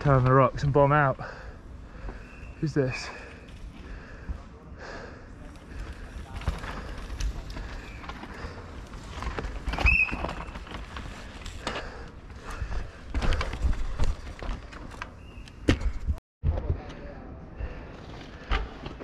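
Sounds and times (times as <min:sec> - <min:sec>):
mountain bike rolling over rocks: 0:05.4 - 0:15.2.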